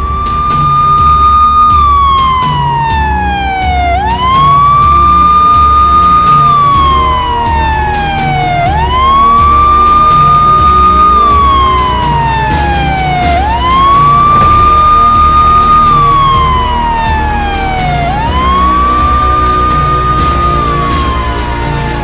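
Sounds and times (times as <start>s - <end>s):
music with steady low beat: 0.0s - 22.0s
siren wailing: 0.0s - 22.0s.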